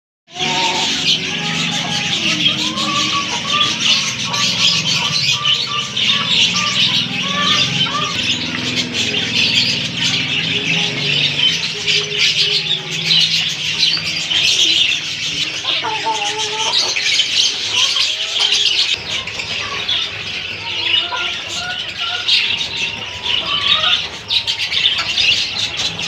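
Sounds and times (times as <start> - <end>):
budgerigars chattering: 0.4 - 26.0.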